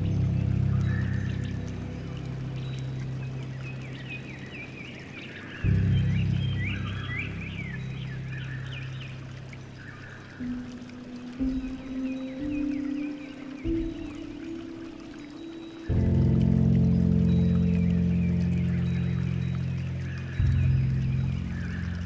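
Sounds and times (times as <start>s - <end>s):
bird chirping: 0.0s - 22.0s
running water: 0.0s - 22.0s
soft piano music: 0.0s - 22.0s.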